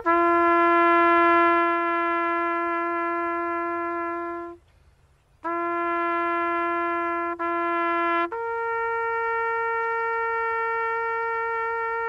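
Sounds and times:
trumpet long held note: 0.0s - 4.7s, 5.4s - 12.0s.

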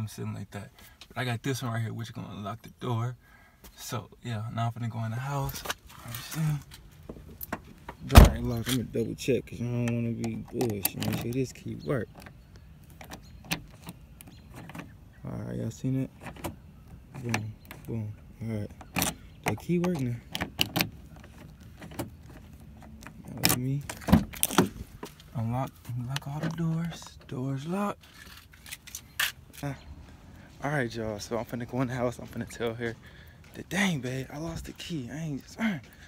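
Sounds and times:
phone handling rustles and clicks: 9.8s - 15.0s, 18.8s - 27.2s, 28.0s - 29.7s.

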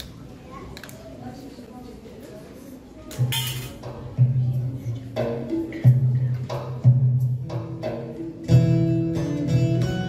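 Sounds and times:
murmur of voices: 0.0s - 10.0s.

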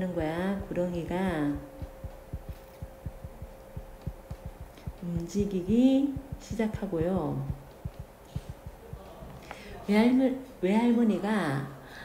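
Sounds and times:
faint steady hum: 0.0s - 12.0s
stylus tapping on tablet screen: 0.8s - 9.1s.

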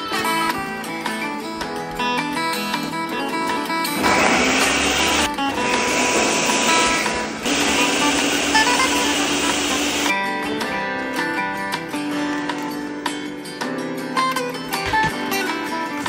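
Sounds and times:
acoustic guitar music: 0.0s - 16.0s
blender motor running: 4.0s - 10.1s.

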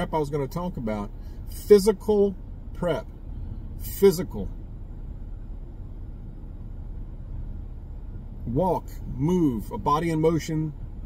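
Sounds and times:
vehicle cabin low rumble: 0.0s - 11.0s.

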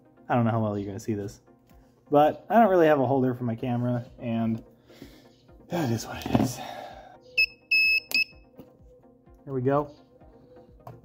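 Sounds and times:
spot welder beeping: 7.4s - 8.3s.

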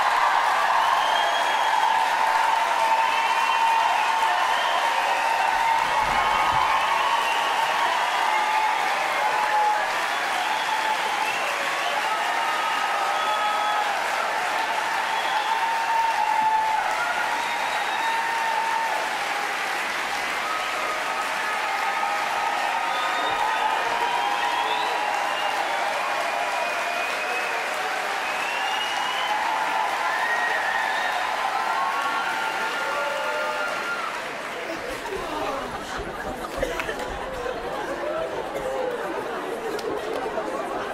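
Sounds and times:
audience applauding: 0.0s - 40.9s
voices calling out and cheering: 0.0s - 40.9s.

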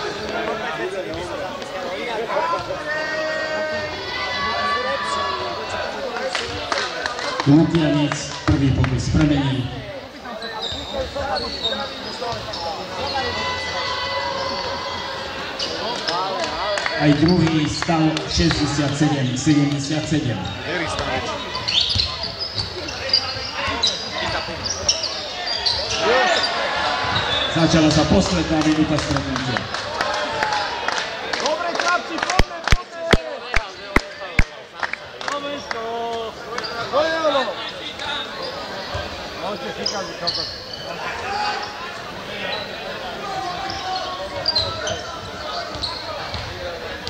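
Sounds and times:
chatter of many voices: 0.0s - 47.0s
basketball bouncing on court: 20.4s - 25.0s, 45.2s - 46.6s.

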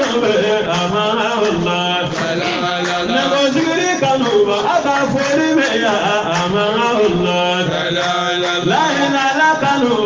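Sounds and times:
person chanting religious poem: 0.0s - 10.0s.

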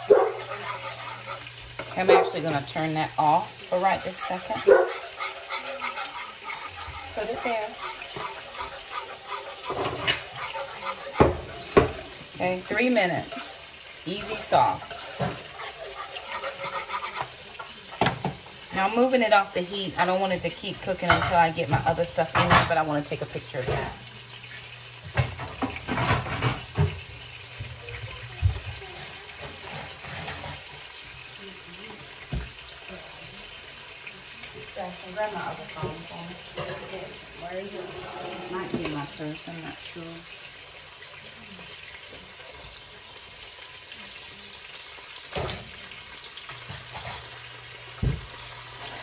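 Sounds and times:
meat sizzling in a skillet: 0.0s - 49.0s
pans or utensils knocking: 3.9s - 12.1s, 16.3s - 18.4s, 25.1s - 27.1s.

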